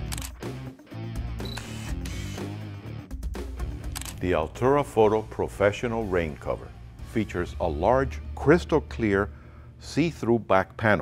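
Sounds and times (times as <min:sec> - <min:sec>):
camera shutter clicks: 0:00.0 - 0:00.4, 0:01.4 - 0:02.5, 0:03.8 - 0:04.2.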